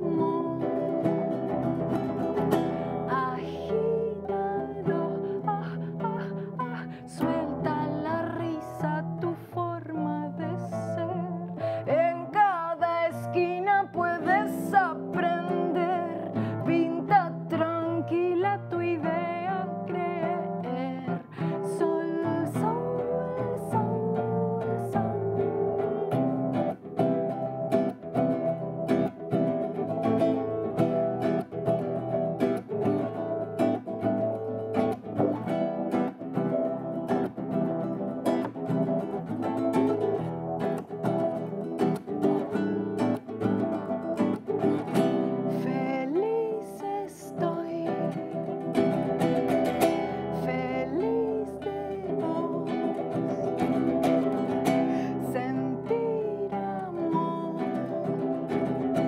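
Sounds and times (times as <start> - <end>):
acoustic guitar strumming: 0.0 - 59.0
woman singing: 0.0 - 59.0.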